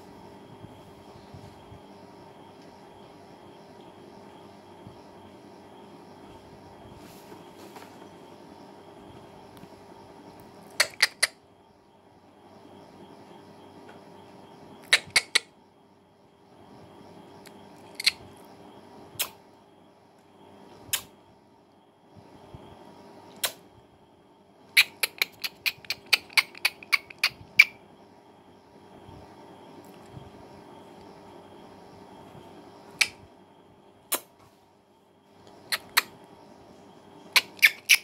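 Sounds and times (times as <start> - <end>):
steady room hum: 0.0 - 38.0.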